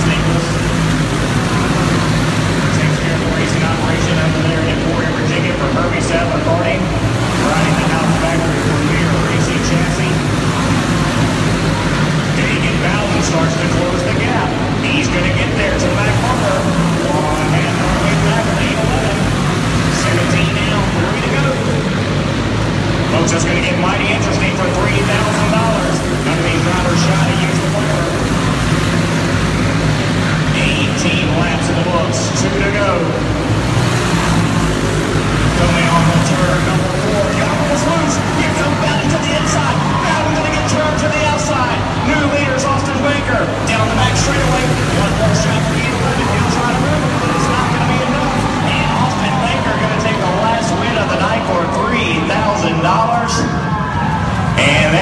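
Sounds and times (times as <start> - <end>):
racing kart engines: 0.0 - 55.0
voices: 0.0 - 55.0.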